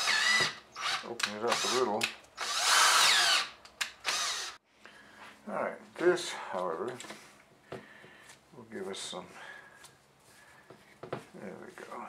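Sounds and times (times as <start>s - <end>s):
cordless drill whining: 0.0s - 4.6s.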